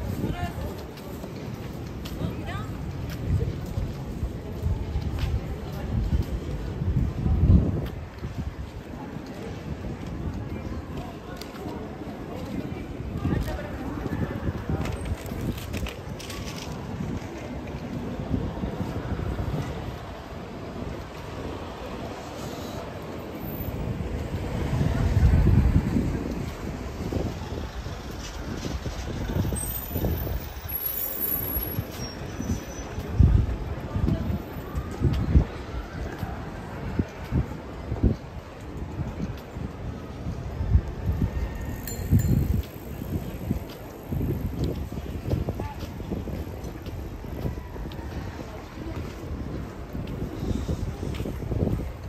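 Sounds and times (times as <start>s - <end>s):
city street rumble: 0.0s - 52.0s
faint voices of passers-by: 0.0s - 52.0s
wind buffeting microphone: 0.0s - 52.0s.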